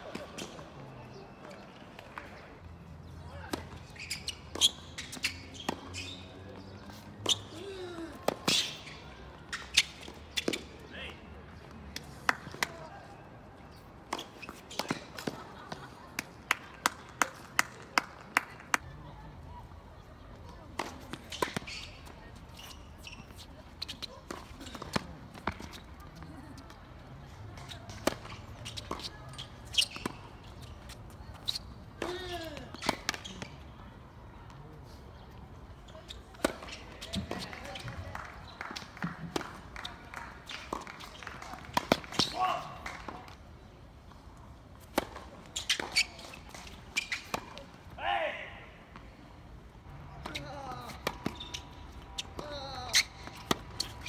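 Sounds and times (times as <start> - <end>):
tennis balls struck by rackets: 14.1 - 18.8, 27.5 - 33.5, 40.5 - 43.4, 44.8 - 47.7, 50.2 - 54.0.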